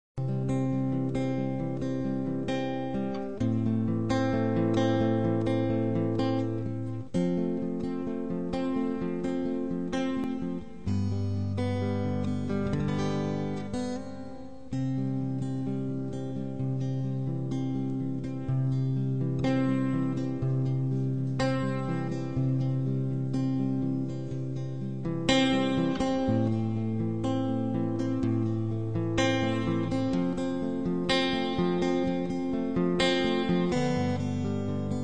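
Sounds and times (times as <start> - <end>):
acoustic guitar strumming: 0.2 - 35.0.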